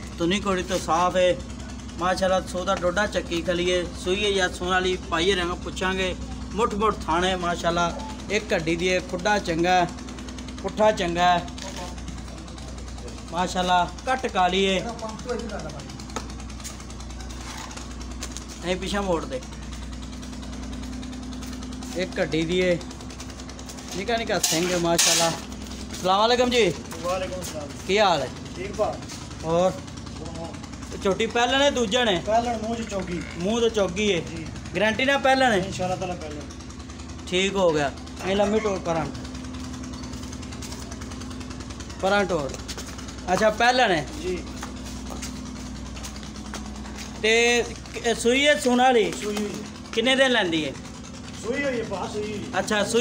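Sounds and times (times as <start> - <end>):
small engine running: 0.0 - 53.0
small motor humming: 0.0 - 53.0.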